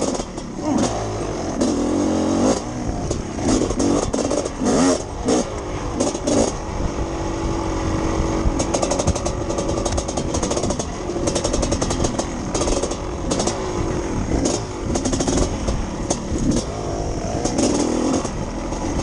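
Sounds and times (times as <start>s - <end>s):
dirt bike engine revving: 0.0s - 19.0s.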